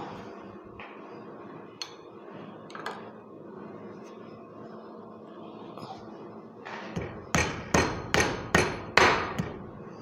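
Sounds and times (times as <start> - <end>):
hammer tapping on metal: 7.0 - 9.6.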